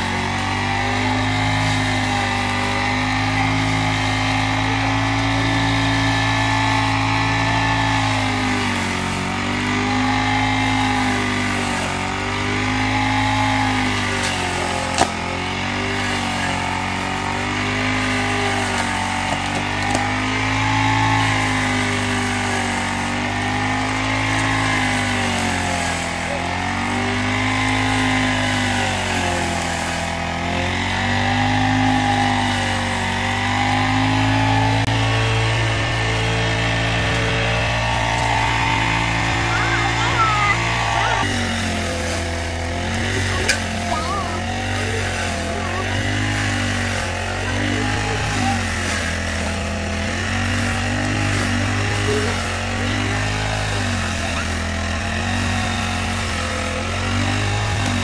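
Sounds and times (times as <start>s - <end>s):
brush cutter engine running: 0.0s - 58.0s.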